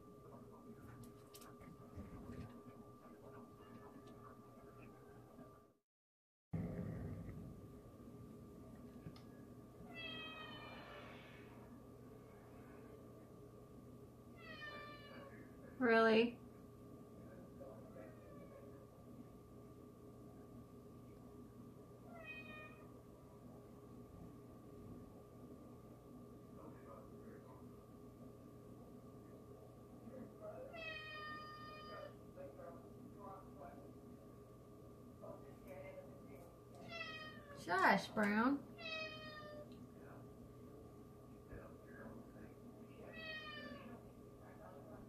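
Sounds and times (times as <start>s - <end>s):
faint background hum: 0.0s - 5.8s, 6.6s - 45.0s
cat meowing: 9.9s - 11.2s, 14.4s - 15.3s, 22.1s - 22.9s, 30.7s - 32.2s, 36.8s - 37.6s, 38.8s - 39.7s, 43.1s - 43.9s.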